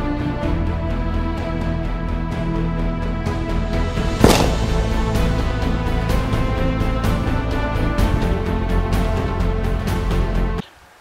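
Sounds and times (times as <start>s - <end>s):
sniper rifle gunshot: 4.2s - 5.2s.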